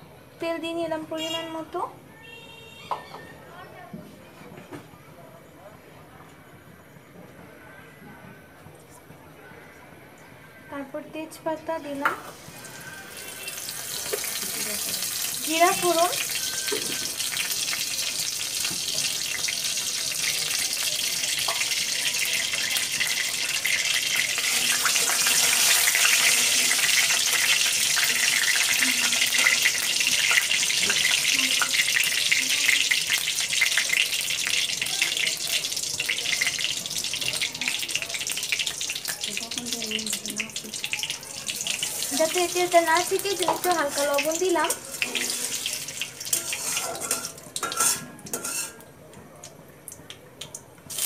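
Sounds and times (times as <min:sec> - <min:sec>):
oil sizzling in a wok: 0:11.9 - 0:48.9
metal spatula scraping pan: 0:24.4 - 0:29.7, 0:43.4 - 0:48.8.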